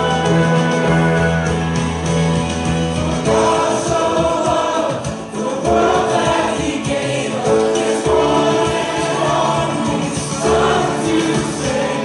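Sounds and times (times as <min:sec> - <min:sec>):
congregation singing: 0:00.0 - 0:12.0
instrumental accompaniment: 0:00.0 - 0:12.0.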